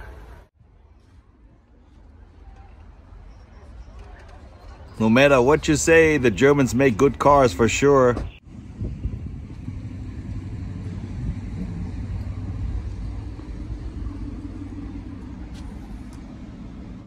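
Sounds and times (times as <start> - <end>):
car engine idling: 8.5 - 17.0.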